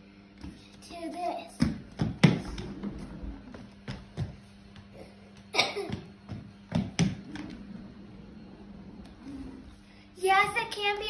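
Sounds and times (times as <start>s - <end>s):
steady low hum: 0.0s - 11.0s
shoes knocking on wooden floor: 1.6s - 7.7s.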